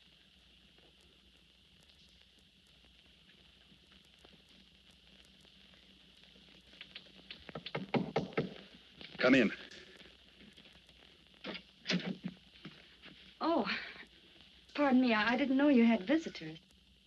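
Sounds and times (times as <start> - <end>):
film soundtrack hiss: 0.0 - 17.0.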